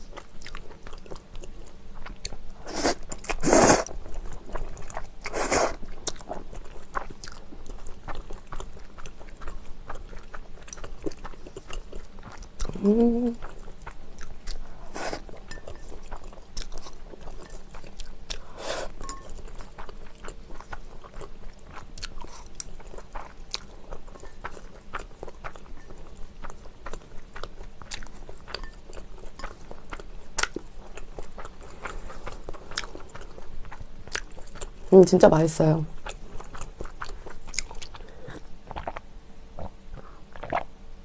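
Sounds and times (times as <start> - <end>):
wet chewing mouth clicks: 36.0 - 39.0, 39.6 - 40.7.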